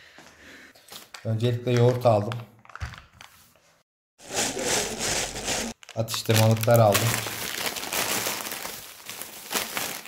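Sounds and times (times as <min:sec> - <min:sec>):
plastic bag rustling: 0:04.2 - 0:10.0.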